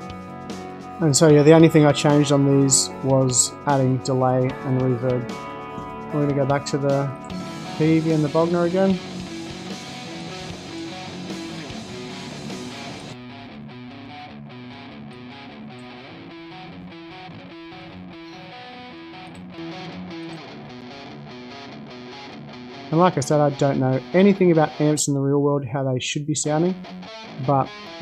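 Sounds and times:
electric guitar riff: 0.0s - 25.0s, 26.7s - 28.0s.

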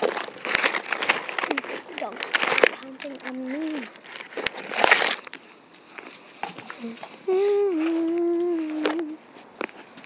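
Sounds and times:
rustle: 0.0s - 10.0s
person humming: 6.8s - 9.2s.

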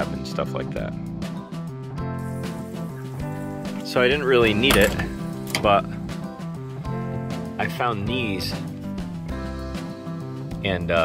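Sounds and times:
guitar background music: 0.0s - 11.0s.

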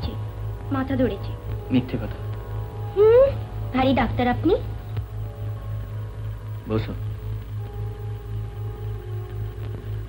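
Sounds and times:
pulsing low hum: 0.0s - 10.0s.

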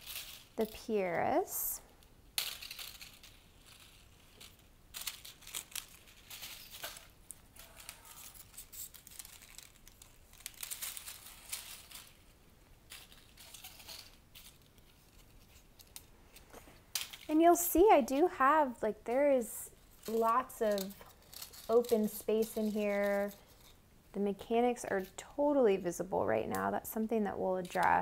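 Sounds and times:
rustling of foliage and dried seed pods: 0.0s - 28.0s.

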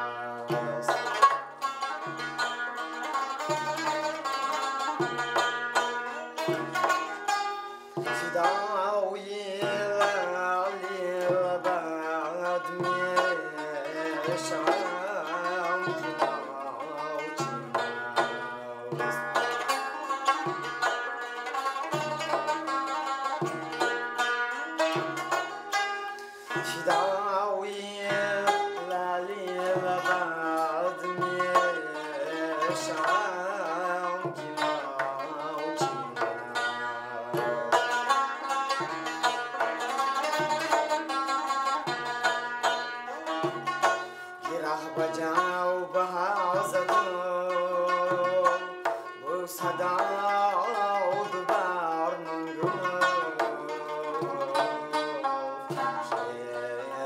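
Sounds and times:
man singing: 0.0s - 7.2s, 8.0s - 25.6s, 26.4s - 57.0s
plucked lute: 0.0s - 57.0s
frame drum beat: 0.4s - 1.4s, 9.5s - 10.4s, 17.3s - 25.8s.

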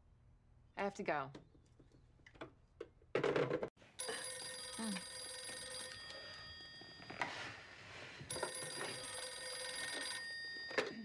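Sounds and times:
telephone bell ringing: 4.0s - 11.0s.

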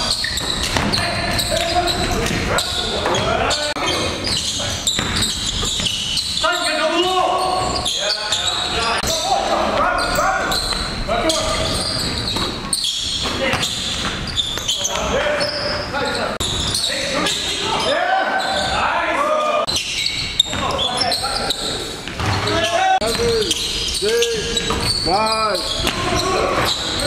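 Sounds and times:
players calling out: 0.0s - 27.0s
sneakers squeaking: 0.0s - 27.0s
basketball bouncing on hardwood: 0.4s - 1.5s.

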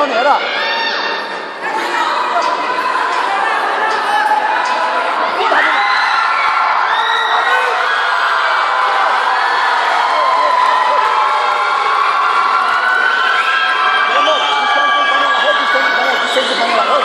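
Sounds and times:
crowd cheering and shouting: 0.0s - 17.0s.

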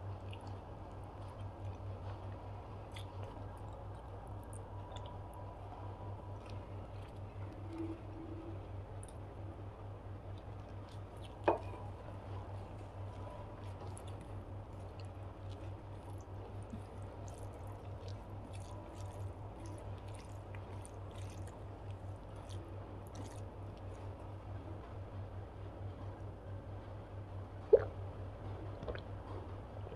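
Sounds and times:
wet squishing of kneaded rice: 0.0s - 25.0s
steady low hum: 0.0s - 29.9s.

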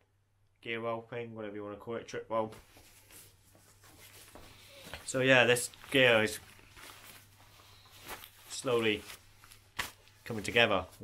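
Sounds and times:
fabric pouch rustling: 2.6s - 11.0s.

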